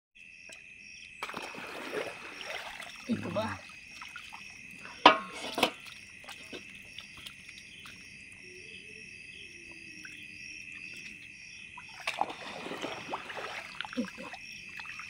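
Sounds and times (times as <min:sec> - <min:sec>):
insects trilling: 0:00.2 - 0:15.0
fish splashing into metal bowl: 0:01.2 - 0:08.0, 0:11.8 - 0:15.0.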